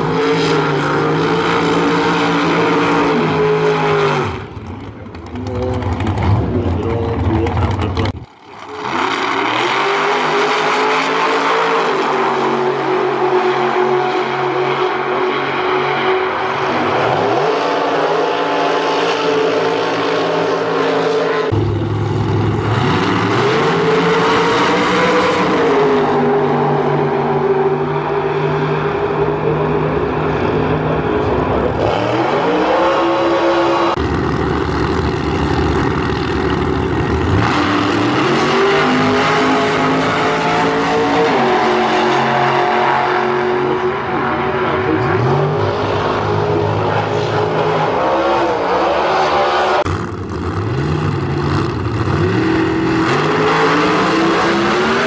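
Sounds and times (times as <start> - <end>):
race car engine revving hard: 0.0 - 4.7, 5.4 - 55.0
car engines idling and revving: 0.0 - 55.0.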